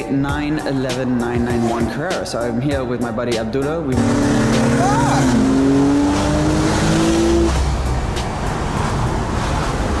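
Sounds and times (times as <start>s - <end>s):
car engine accelerating: 3.9s - 10.0s
road noise: 3.9s - 10.0s.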